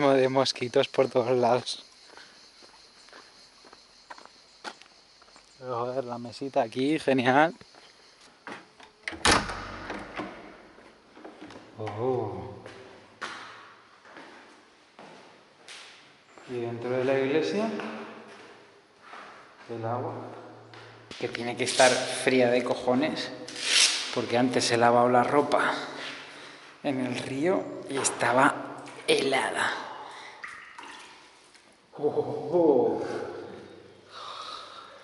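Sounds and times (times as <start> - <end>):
footsteps on stone floor: 1.5 - 5.5, 7.6 - 8.9, 10.7 - 16.5, 17.7 - 22.2
water trickling in stone basin: 28.0 - 31.8
water splash: 30.4 - 31.4.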